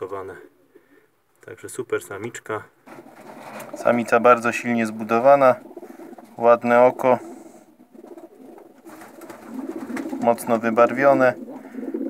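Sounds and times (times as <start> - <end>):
pigeons cooing: 2.9 - 12.0.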